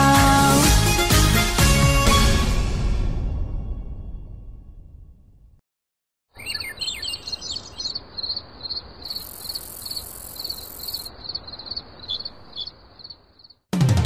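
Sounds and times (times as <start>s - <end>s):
song: 0.0s - 3.4s
birds chirping: 6.3s - 13.6s
background hiss: 7.2s - 13.2s.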